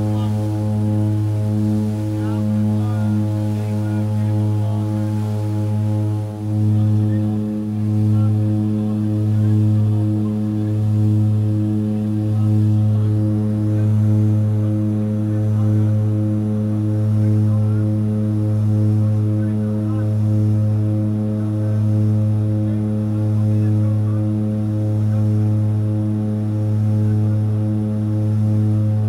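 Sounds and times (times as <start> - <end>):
low propeller hum: 0.0 - 29.0.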